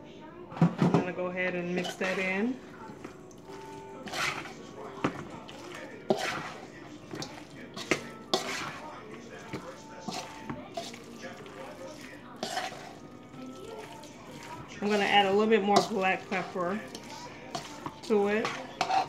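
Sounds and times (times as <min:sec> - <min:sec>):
spoon scraping in bowl: 0:01.7 - 0:19.0
spoon clinking metal bowl: 0:01.8 - 0:19.0.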